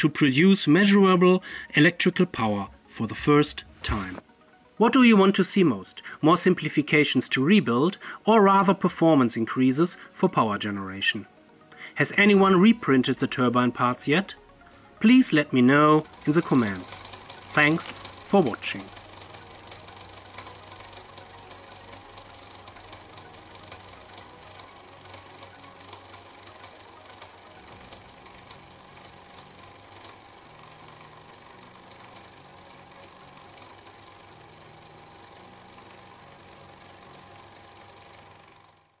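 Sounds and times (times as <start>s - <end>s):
light mechanical rattle: 16.0s - 39.0s.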